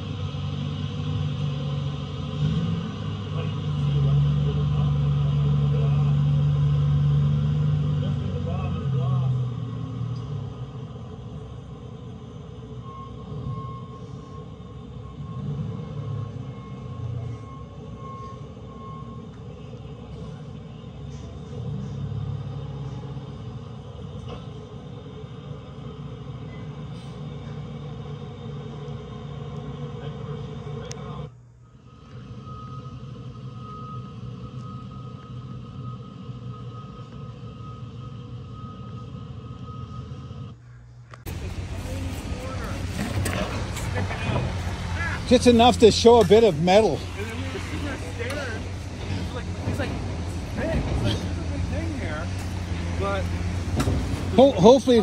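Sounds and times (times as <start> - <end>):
heavy machinery rumbling: 0.0 - 55.0
faint steady whine: 8.0 - 55.0.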